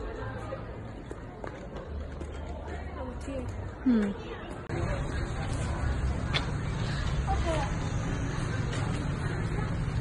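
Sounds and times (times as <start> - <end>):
background chatter of voices: 0.0 - 10.0
low street rumble: 0.0 - 10.0.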